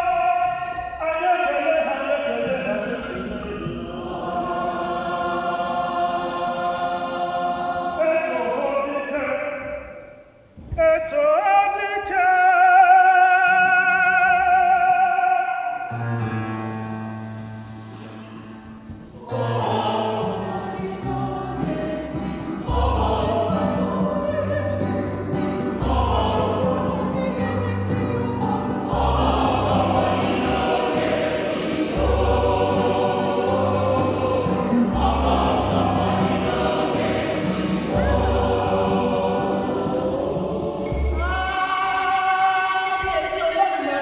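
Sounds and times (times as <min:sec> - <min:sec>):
mixed choir singing: 0:00.0 - 0:10.0, 0:18.6 - 0:44.0.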